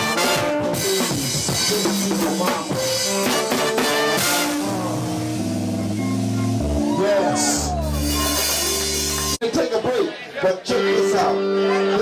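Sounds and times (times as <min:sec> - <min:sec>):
held instrumental notes: 0:00.0 - 0:09.4
low bass line: 0:00.0 - 0:09.4.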